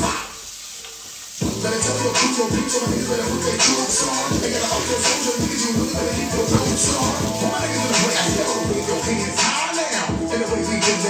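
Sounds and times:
hip hop music: 0.0s - 0.4s, 1.4s - 11.0s
faint hiss: 0.0s - 11.0s
heavy kick drum and bass: 1.4s - 11.0s.

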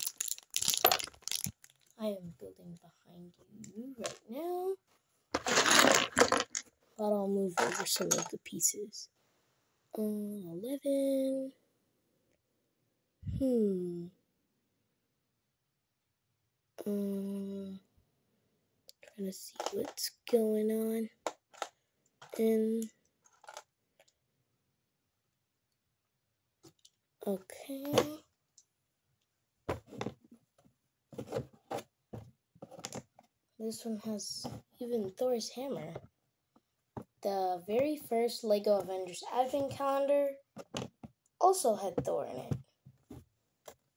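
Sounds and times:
plastic pieces clattering: 0.0s - 2.0s, 5.4s - 6.7s, 7.6s - 8.4s, 23.2s - 24.1s
plastic toy bricks clicking: 0.0s - 2.0s, 5.4s - 6.7s, 7.6s - 8.4s.

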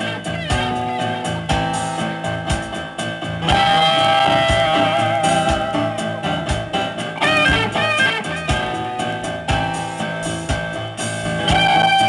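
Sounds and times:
bass: 0.0s - 12.0s
drum beat: 0.0s - 12.0s
electric guitar: 0.0s - 12.0s
keyboard: 0.0s - 12.0s.

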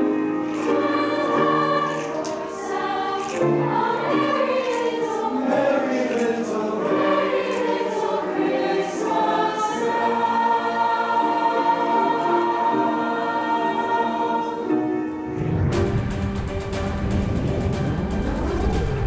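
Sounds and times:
choir singing in harmony: 0.0s - 19.0s.

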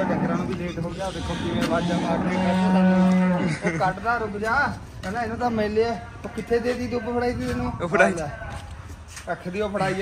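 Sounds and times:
cow mooing: 0.0s - 3.6s.

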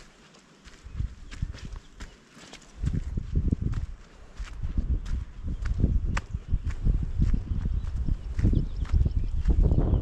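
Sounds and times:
footsteps on dirt trail: 0.0s - 10.0s.

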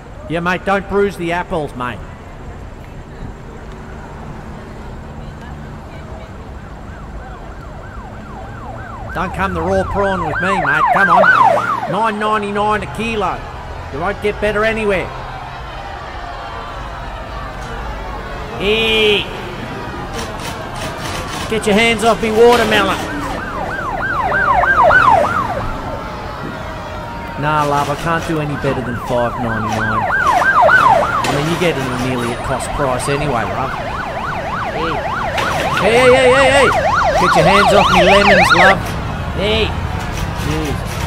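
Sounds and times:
emergency siren yelping: 6.4s - 40.0s.

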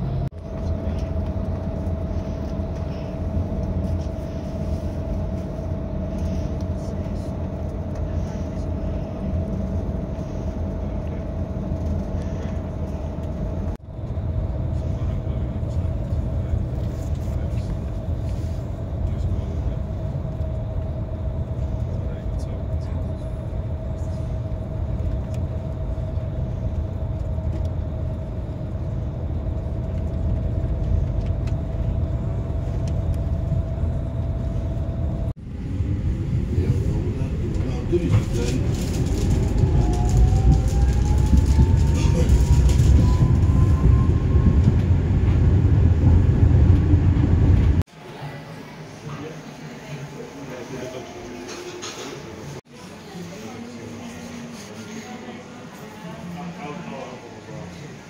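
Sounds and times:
bus engine rumble inside cabin: 0.0s - 47.9s
faint steady whine: 0.0s - 49.6s.

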